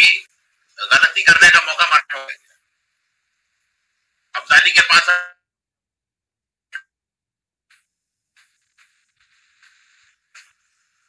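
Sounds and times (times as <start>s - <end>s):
voice through video call: 0.0s - 2.6s, 4.3s - 5.5s.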